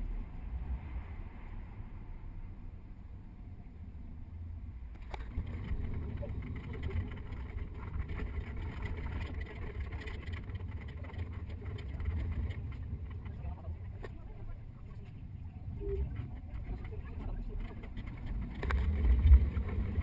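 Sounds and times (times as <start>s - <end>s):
bus engine rumble in traffic: 0.0s - 20.0s.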